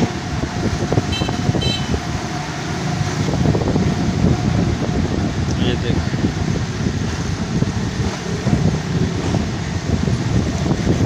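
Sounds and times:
vehicle engine and road rumble: 0.0s - 11.0s.

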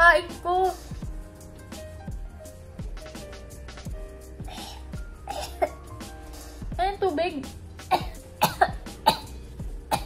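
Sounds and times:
woman coughing: 4.5s - 5.8s, 7.9s - 10.0s.

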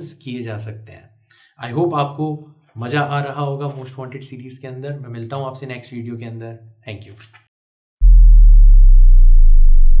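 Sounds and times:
deep electronic tone sliding down: 8.0s - 10.0s.

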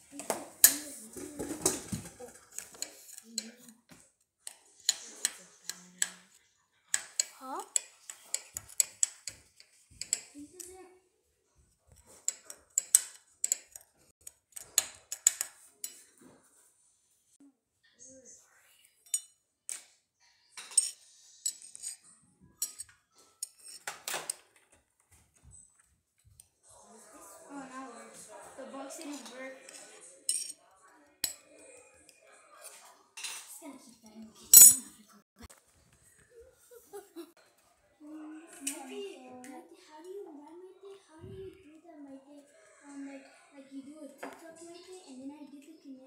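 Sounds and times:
high metallic clink: 34.6s - 34.9s.

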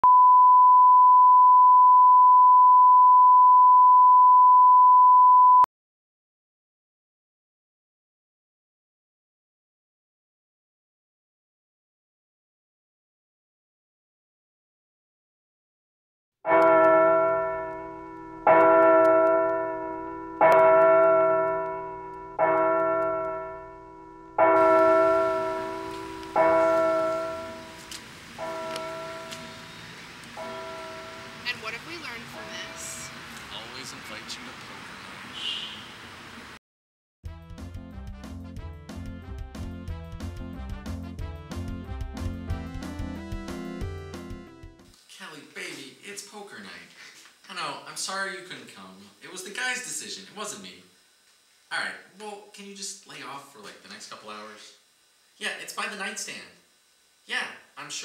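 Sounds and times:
church bell tolling: 16.5s - 27.8s, 28.4s - 29.7s, 30.4s - 31.5s
steady test tone: 16.6s - 27.8s, 28.4s - 34.4s.

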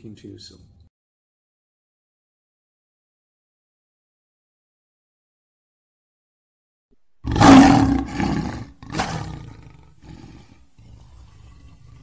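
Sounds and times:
lion roaring: 7.2s - 12.0s.

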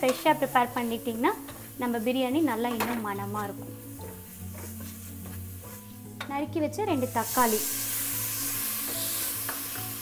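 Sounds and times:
food sizzling in hot oil: 0.0s - 10.0s
wooden spatula stirring: 3.4s - 6.0s.

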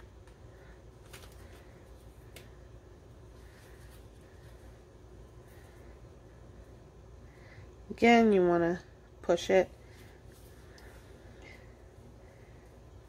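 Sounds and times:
steady low hum: 0.0s - 13.0s
soft clicks of hands handling food: 1.0s - 2.6s.

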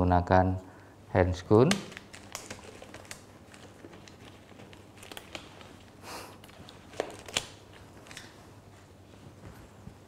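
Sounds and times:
gloves crinkling and clicking: 1.5s - 10.0s.

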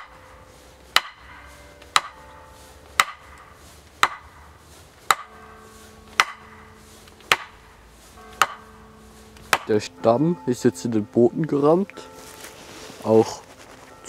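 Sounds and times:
wooden stake hammered into ground: 0.0s - 0.2s, 0.9s - 2.3s, 2.9s - 5.4s, 6.1s - 7.6s, 8.3s - 8.7s, 9.4s - 9.9s.

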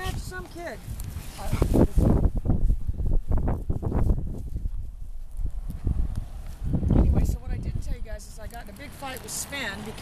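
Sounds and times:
footsteps on mulch path: 0.0s - 10.0s.

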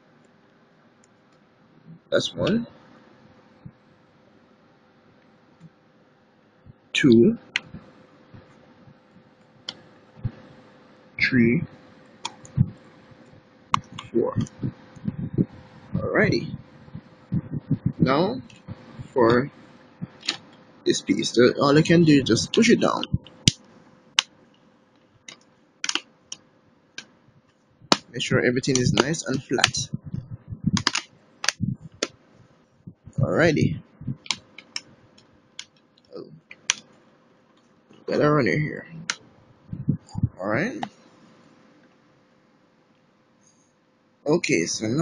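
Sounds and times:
sharp plastic clicks: 25.3s - 26.4s, 28.7s - 29.8s, 30.8s - 32.2s.

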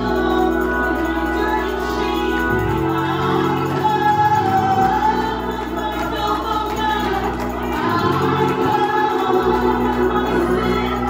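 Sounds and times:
low musical backing: 0.0s - 11.0s
woman singing gospel song: 0.0s - 11.0s.

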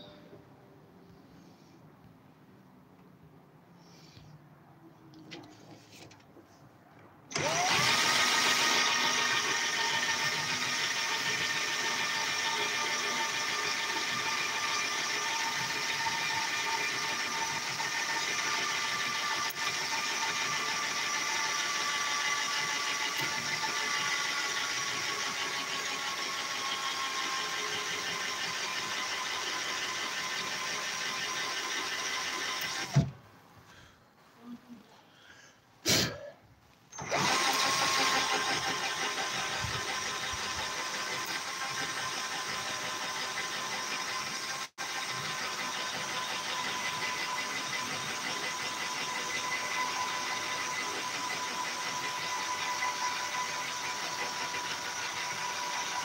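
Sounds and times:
cordless drill whine: 7.3s - 33.1s, 36.9s - 56.0s.

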